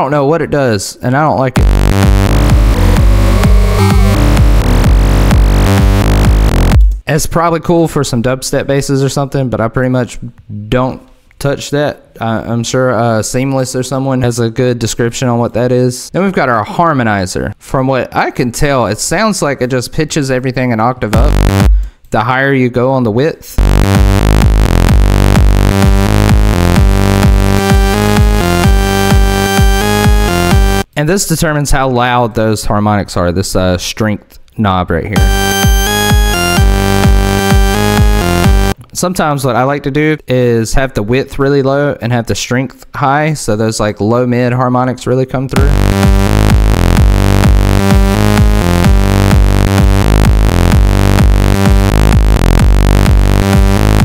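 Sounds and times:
buzzy synthesizer bassline: 0:01.5 - 0:07.0, 0:21.1 - 0:21.8, 0:23.6 - 0:30.9, 0:35.2 - 0:38.8, 0:45.6 - 0:54.0.

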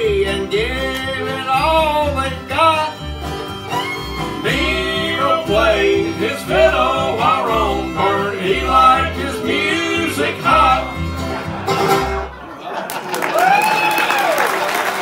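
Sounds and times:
upright bass notes: 0:00.0 - 0:12.4
bluegrass band playing: 0:00.0 - 0:12.9
audience applause and cheering: 0:11.2 - 0:15.0
audience whooping: 0:12.8 - 0:15.0.

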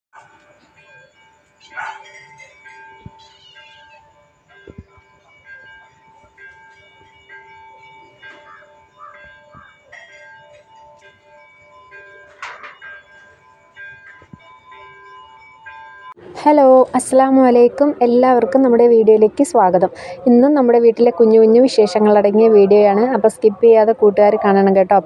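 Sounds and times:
faint background music: 0:16.2 - 0:25.0.

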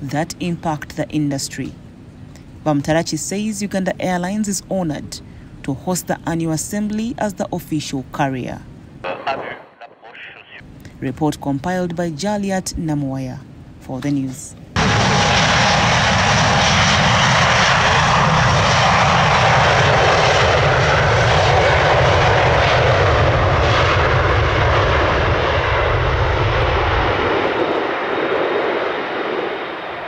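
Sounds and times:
jet engine roar: 0:14.8 - 0:30.0.

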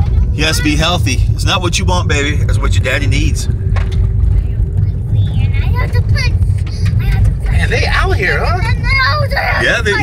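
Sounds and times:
car driving on dirt road: 0:00.0 - 0:10.0.

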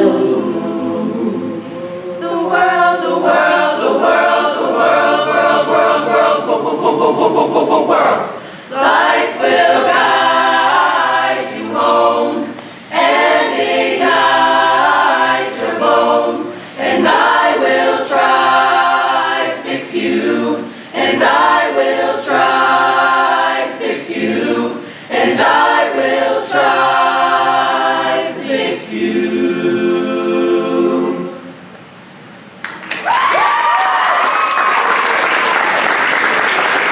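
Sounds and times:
a cappella choir singing: 0:00.0 - 0:31.7.

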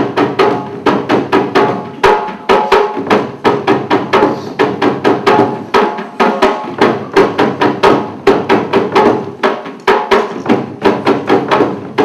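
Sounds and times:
drum beaten in steady rhythm: 0:00.0 - 0:12.0.

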